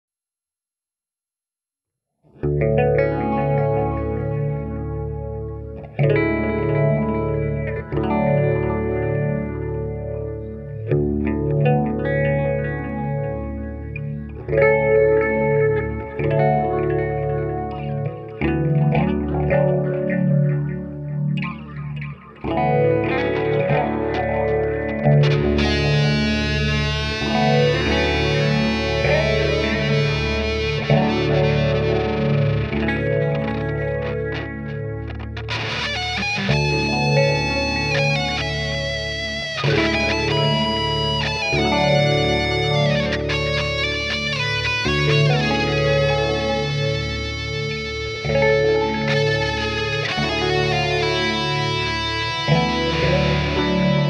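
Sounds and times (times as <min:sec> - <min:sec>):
distorted electric guitar lead: 0:02.4 - 0:54.0.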